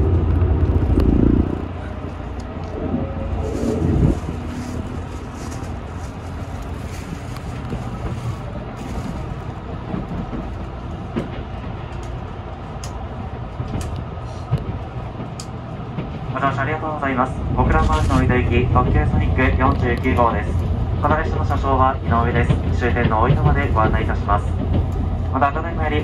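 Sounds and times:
moving train rumble: 0.0 - 26.0.

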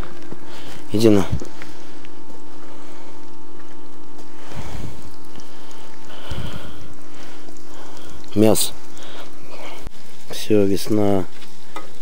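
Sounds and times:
vegetables sizzling in a frying pan: 4.0 - 12.0.

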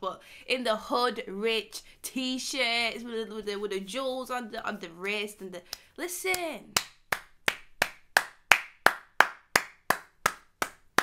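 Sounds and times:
person clapping hands: 6.8 - 11.0.

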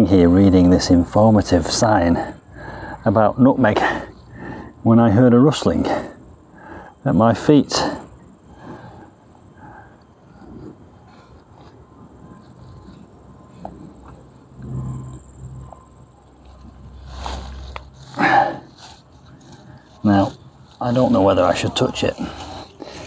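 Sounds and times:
lizard rustling dry leaves: 16.4 - 23.0.

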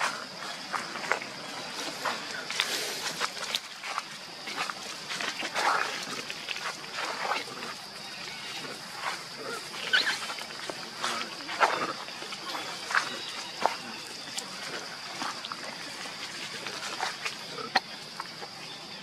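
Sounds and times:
monkey calls: 7.0 - 15.6.

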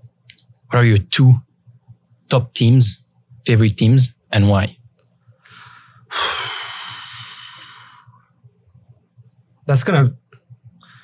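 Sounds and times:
person sighing: 6.1 - 8.0.

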